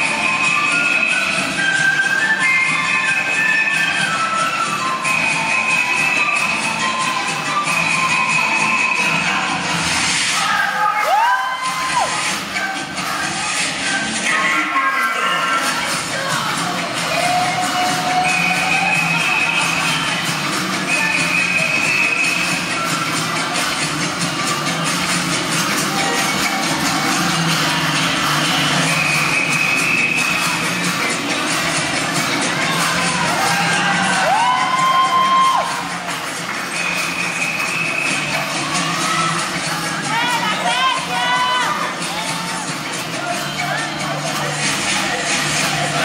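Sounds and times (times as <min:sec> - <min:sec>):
loud dance music: 0:00.0 - 0:46.0
audience cheering and shouting: 0:09.6 - 0:23.8, 0:25.0 - 0:46.0.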